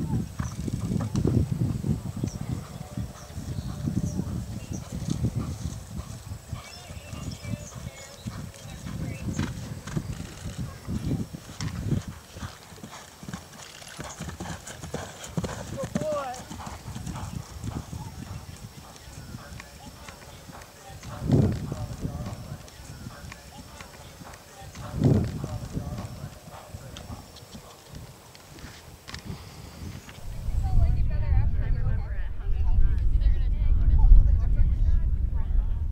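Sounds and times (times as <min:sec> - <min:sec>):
horse hoofbeats on grass: 0:00.0 - 0:29.2
low thuds: 0:30.2 - 0:35.9.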